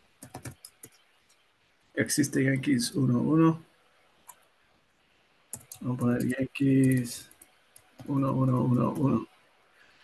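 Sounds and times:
keyboard typing: 0.2 - 1.4, 5.5 - 9.2.

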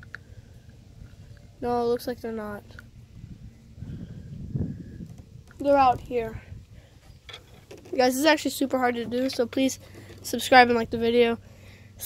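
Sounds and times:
wind buffeting microphone: 0.8 - 9.3, 10.3 - 11.4.

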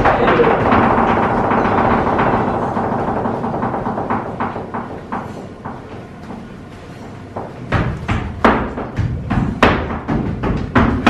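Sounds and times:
heeled shoes stamping on wood: 7.3 - 11.0.

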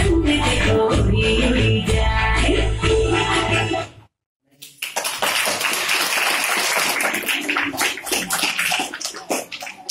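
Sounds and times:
children applauding: 4.6 - 9.9.

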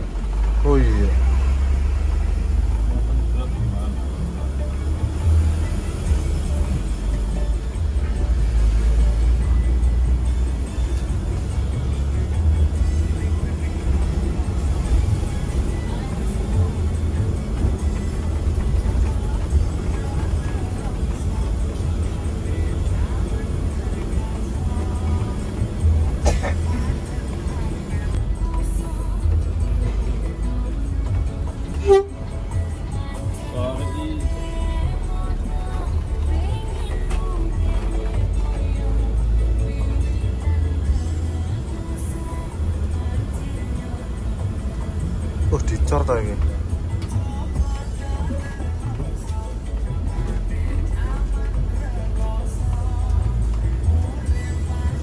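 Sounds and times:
diesel engine rumble: 0.0 - 55.0
music playing: 0.0 - 55.0
tyres on road: 0.0 - 55.0.

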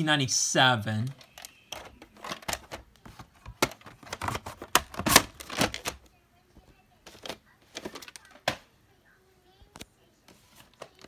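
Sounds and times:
plastic cassette clacking on cardboard: 1.1 - 6.0.

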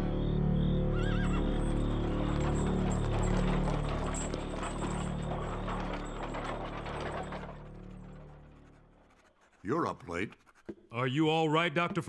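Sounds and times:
background music: 0.0 - 9.0
horse whinnying: 0.9 - 7.3
hooves clip-clopping: 1.3 - 12.0.

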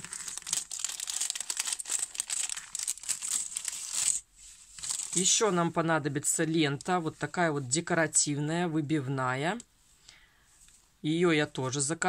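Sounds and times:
plastic packet crinkling: 0.0 - 5.4.

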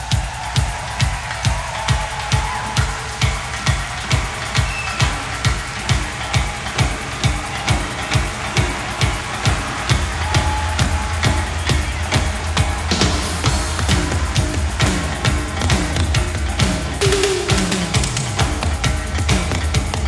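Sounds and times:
drum beat: 0.0 - 20.0.

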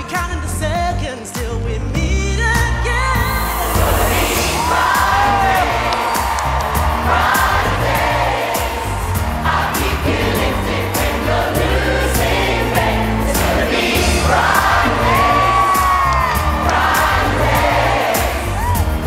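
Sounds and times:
backing track with bass beat: 0.0 - 19.0
large choir singing: 3.2 - 19.0.

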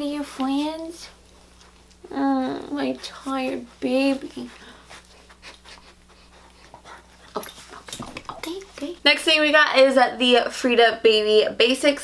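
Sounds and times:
small dog panting: 2.6 - 9.0.

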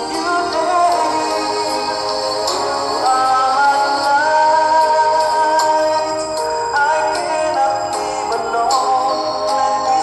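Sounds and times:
karaoke backing track: 0.0 - 10.0
man singing slow song: 0.0 - 10.0.

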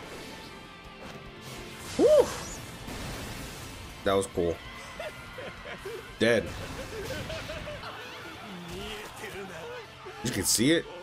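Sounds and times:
background music: 0.0 - 11.0
crashing destruction sound effects: 2.8 - 4.0.

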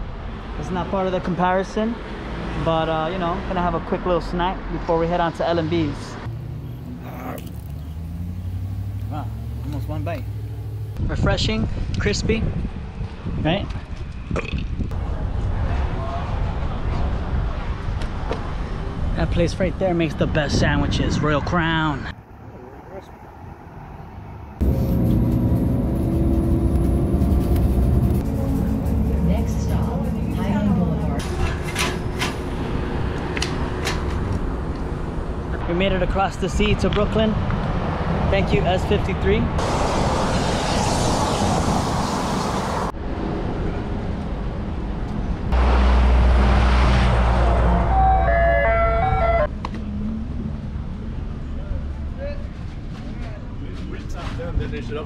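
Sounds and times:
quiet street noise: 0.0 - 55.0
wind and bicycle road noise: 0.0 - 55.0
bus driving rumble: 4.4 - 11.3, 22.1 - 55.0
steady engine tones: 5.2 - 11.3, 21.9 - 52.1.

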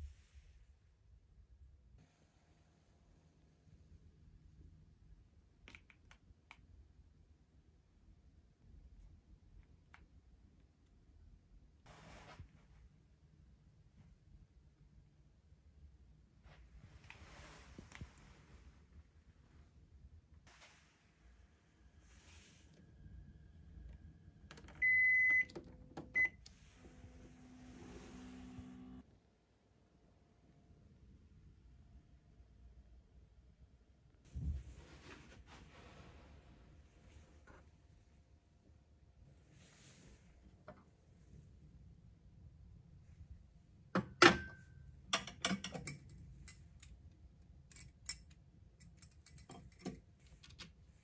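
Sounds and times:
glassware clinking on glass shelf: 44.0 - 46.1.

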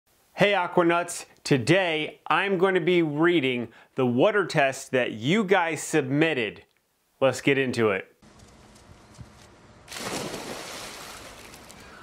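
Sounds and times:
people splashing into pool: 9.9 - 11.9.

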